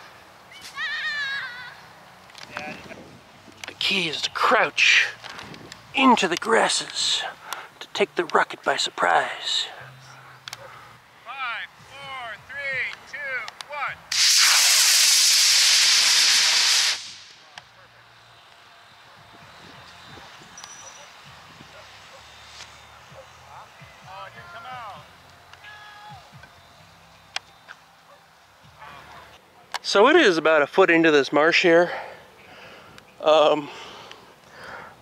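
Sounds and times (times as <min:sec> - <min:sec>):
model rocket motor hissing: 0:14.1 - 0:17.4.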